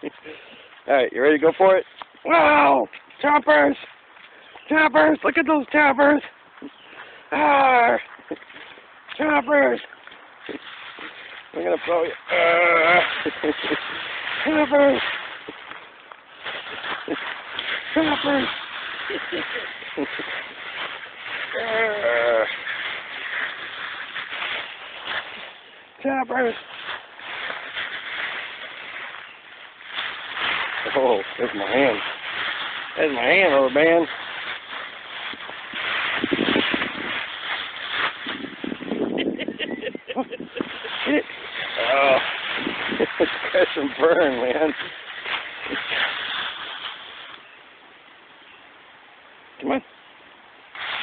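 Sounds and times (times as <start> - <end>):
dry leaves rustling and crunching: 0.0 - 48.2, 50.4 - 51.0
faint voice-like sounds: 6.6 - 8.4, 17.0 - 23.8.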